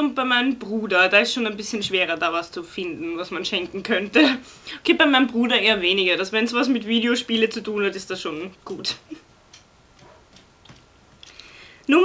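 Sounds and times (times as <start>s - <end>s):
faint irregular clicks: 9.5s - 11.6s.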